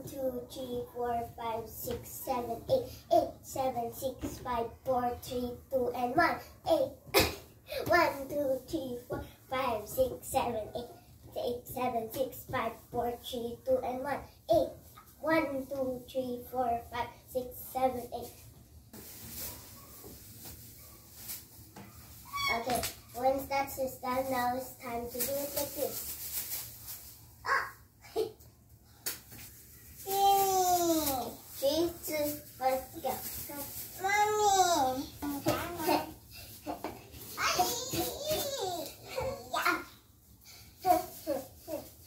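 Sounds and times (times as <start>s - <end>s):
plastic pom-poms rustling: 17.4s - 28.3s, 28.9s - 42.0s.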